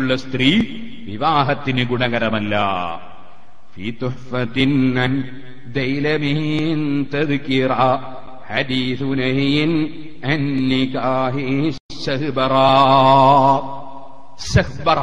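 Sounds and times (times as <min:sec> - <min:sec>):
man chanting melodically: 0:00.0 - 0:15.0.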